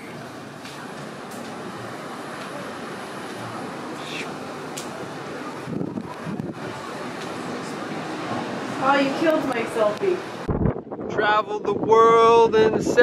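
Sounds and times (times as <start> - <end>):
wind noise on microphone: 5.6 - 6.9, 10.2 - 13.0.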